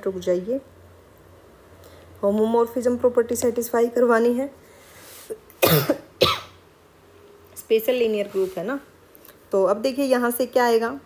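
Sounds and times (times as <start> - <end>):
person coughing: 5.6 - 6.6.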